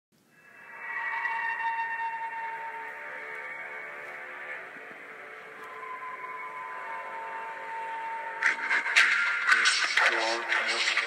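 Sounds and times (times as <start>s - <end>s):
sustained synthesizer tones: 0.2s - 10.9s.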